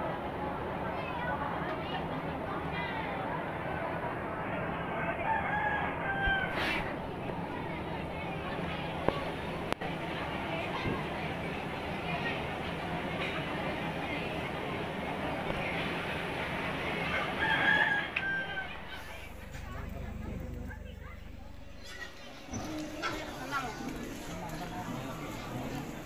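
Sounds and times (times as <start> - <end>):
murmur of outdoor crowd: 0.0 - 26.0
rooster crowing: 5.0 - 6.7, 17.0 - 19.3.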